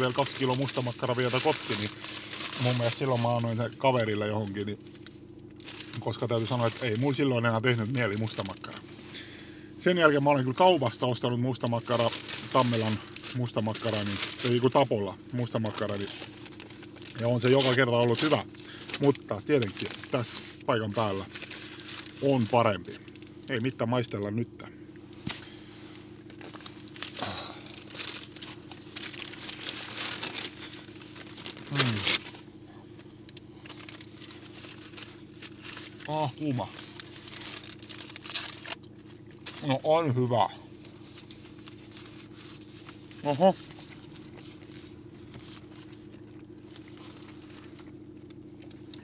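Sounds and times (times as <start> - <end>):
paper wrappers crinkling: 0.0 - 8.8, 10.0 - 23.4, 26.2 - 32.4, 33.0 - 49.0
steady low hum: 0.0 - 49.0
paper napkin handling: 25.2 - 32.4.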